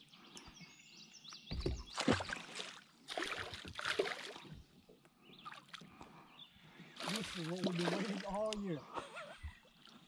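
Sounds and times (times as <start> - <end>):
soft lapping water: 1.4 - 10.0
splash on water: 1.6 - 4.5, 7.0 - 8.6.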